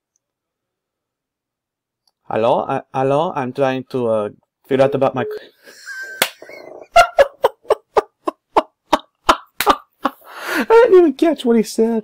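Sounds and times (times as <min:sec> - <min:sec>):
man laughing hard: 0:05.3 - 0:10.4.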